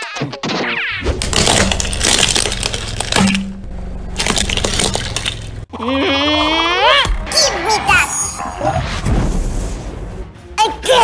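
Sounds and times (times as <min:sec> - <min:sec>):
plastic toys cracking and snapping: 0:01.2 - 0:03.4.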